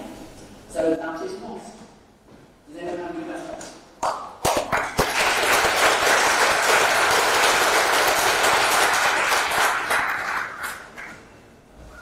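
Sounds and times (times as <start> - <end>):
audience applauding: 4.4 - 11.3.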